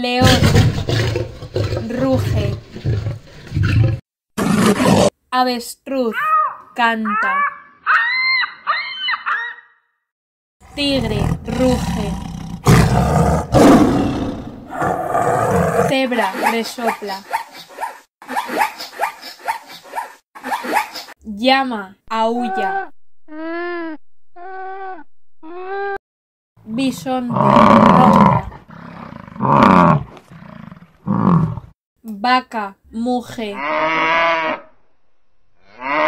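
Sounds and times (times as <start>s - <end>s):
tiger roaring: 0.2s - 5.1s, 10.6s - 16.0s, 27.3s - 31.7s
bison grunting: 10.7s - 16.0s, 27.3s - 31.7s.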